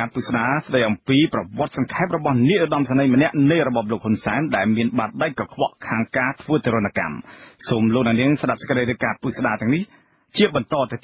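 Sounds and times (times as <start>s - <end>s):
man reading radio news: 0.0s - 11.0s.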